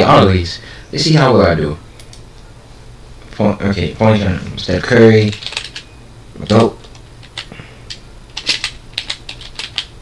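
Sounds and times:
typing on computer keyboard: 5.3s - 9.9s.

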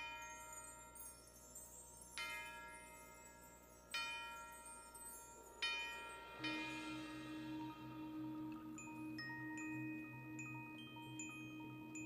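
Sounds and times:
bell-like percussion note ringing: 0.0s - 12.0s.

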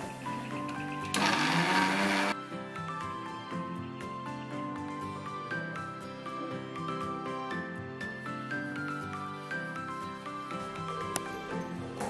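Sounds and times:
background music: 0.0s - 12.0s
mixer grinder grinding: 1.1s - 2.4s.

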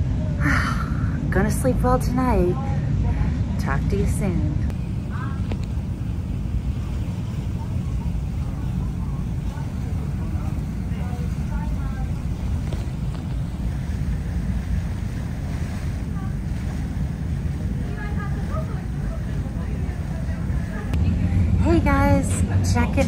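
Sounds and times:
boat engine rumble: 0.0s - 23.0s
faint voices: 0.0s - 23.0s
wind buffeting microphone: 1.1s - 23.0s.

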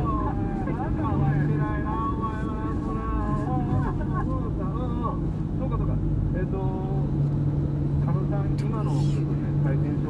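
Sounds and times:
people talking: 0.0s - 7.1s, 8.1s - 10.0s
car engine hum: 0.0s - 10.0s
road noise: 0.0s - 10.0s.

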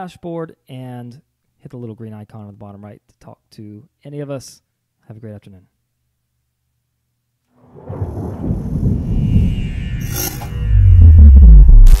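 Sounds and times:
loud deep boom: 7.6s - 12.0s
whoosh: 7.6s - 12.0s
crackly glitch sound: 7.7s - 12.0s
low rumble: 7.7s - 12.0s
sharp burst: 7.8s - 12.0s.

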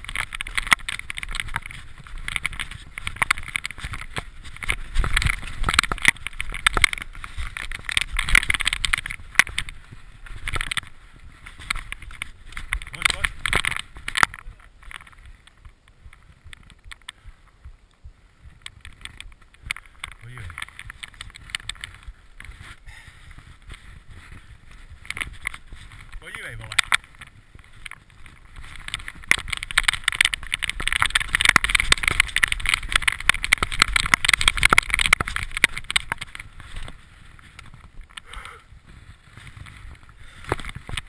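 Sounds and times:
bike knocks and rattles: 0.0s - 17.8s, 18.6s - 38.4s
bike tyres rolling over rocks: 0.0s - 41.0s.

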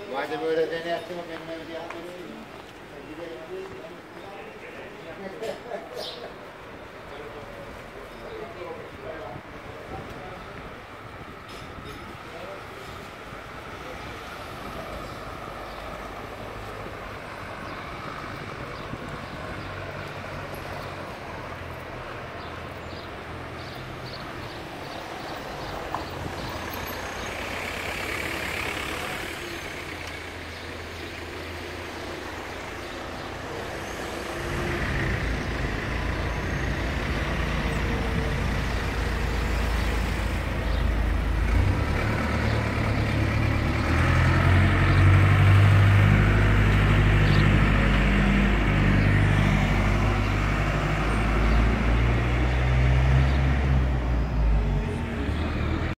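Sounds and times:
street traffic: 0.0s - 55.9s
vehicle engine rumble: 0.5s - 55.9s.

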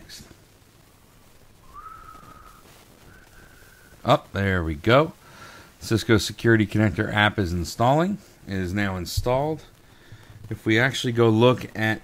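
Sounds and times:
person whistling softly: 1.6s - 4.0s.

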